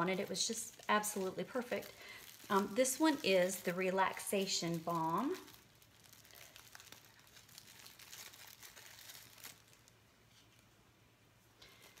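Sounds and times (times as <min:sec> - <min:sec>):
cellophane wrapper crinkling: 0:00.0 - 0:10.7, 0:11.6 - 0:12.0.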